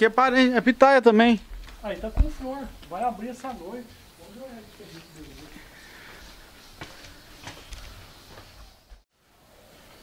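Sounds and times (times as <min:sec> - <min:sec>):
faint footsteps: 0:01.3 - 0:09.1.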